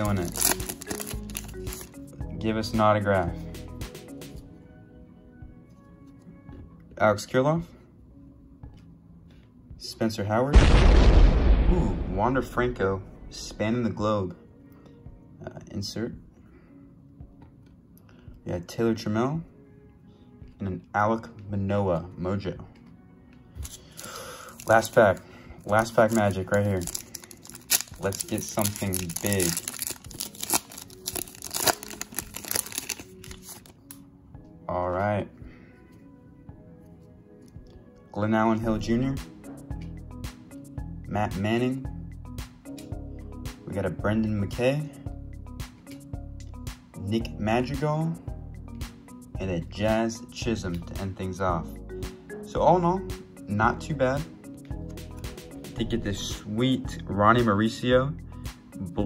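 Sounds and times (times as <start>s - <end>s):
foil wrapper crinkling and tearing: 0.0s - 2.0s, 23.6s - 34.0s
quiet background music: 0.0s - 59.0s.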